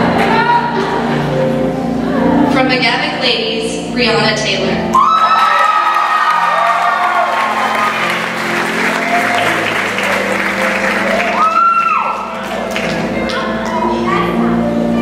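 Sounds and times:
background music: 0:00.0 - 0:15.0
audience applauding: 0:05.0 - 0:14.0.

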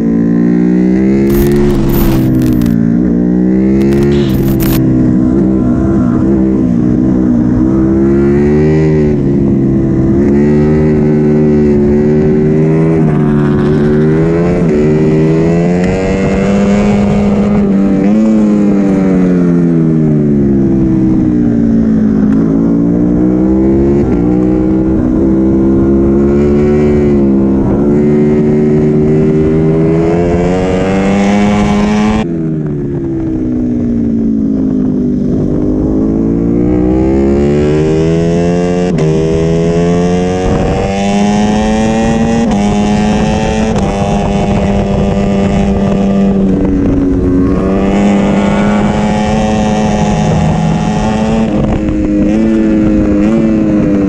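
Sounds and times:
motorcycle engine revving: 0:00.0 - 0:32.3, 0:33.2 - 0:54.0.

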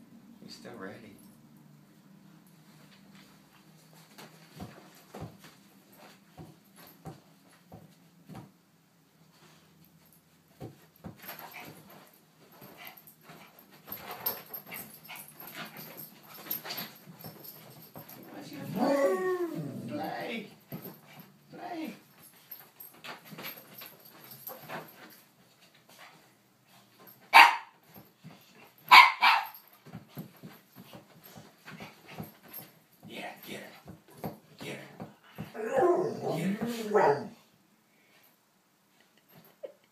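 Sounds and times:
faint scuffling: 0:09.3 - 0:37.4
dog wavering vocal sound: 0:18.4 - 0:20.2, 0:35.5 - 0:37.4
dog barking loudly: 0:27.3 - 0:27.7, 0:28.9 - 0:29.5.

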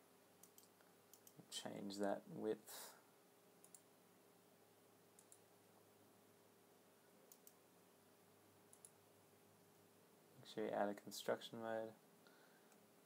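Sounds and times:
faint steady hum: 0:00.0 - 0:13.0
computer mouse clicks: 0:00.4 - 0:01.4, 0:03.6 - 0:03.9, 0:05.2 - 0:05.4, 0:07.3 - 0:07.6, 0:08.7 - 0:09.0.

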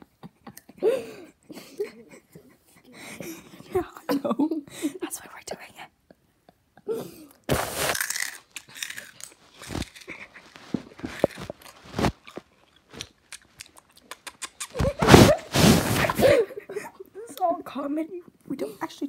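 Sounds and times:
person whispering: 0:05.0 - 0:06.0.

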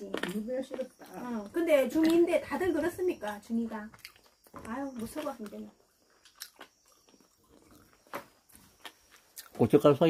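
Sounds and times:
faint chewing: 0:00.0 - 0:09.6.

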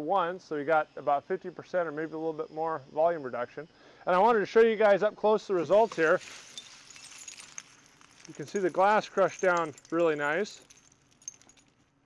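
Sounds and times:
glass shards clinking and scraping: 0:05.6 - 0:11.8.

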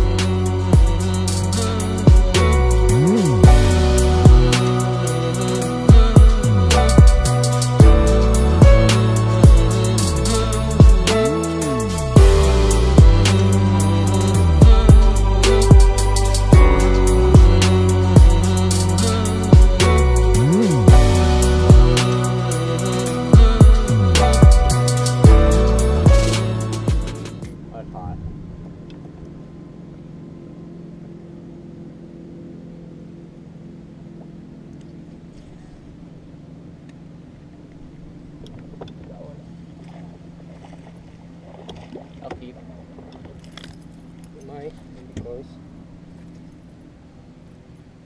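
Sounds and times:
intro music: 0:00.0 - 0:27.9
electric trolling motor humming: 0:00.0 - 0:48.0.

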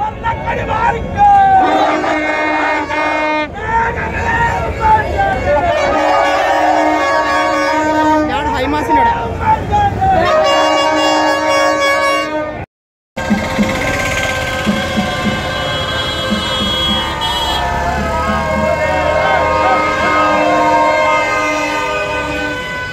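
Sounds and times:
crowd shouting: 0:00.0 - 0:11.5, 0:13.6 - 0:22.9
horn blasts: 0:01.6 - 0:03.6, 0:04.5 - 0:09.0, 0:10.2 - 0:22.9
motorbikes passing: 0:13.2 - 0:22.9
plastic party trumpets blown: 0:13.7 - 0:17.6.

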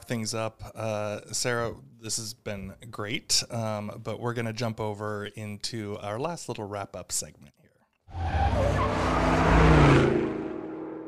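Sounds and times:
car engine revving: 0:08.1 - 0:11.0.

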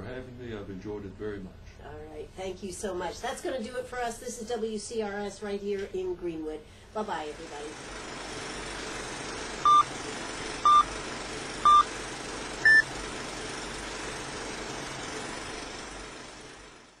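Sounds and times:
steady hiss: 0:07.0 - 0:17.0
countdown beeps: 0:09.6 - 0:09.9, 0:10.6 - 0:10.9, 0:11.7 - 0:11.9, 0:12.6 - 0:12.9.

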